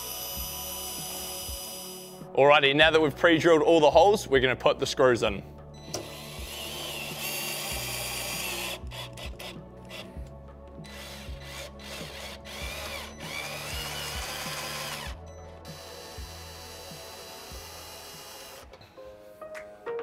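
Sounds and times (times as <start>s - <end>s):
cordless drill driving screws: 0.0s - 2.2s, 5.9s - 10.2s, 10.8s - 18.8s.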